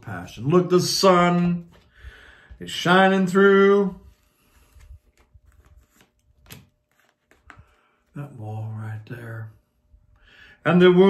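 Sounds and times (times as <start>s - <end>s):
cards clicking and rustling: 4.1s - 8.1s.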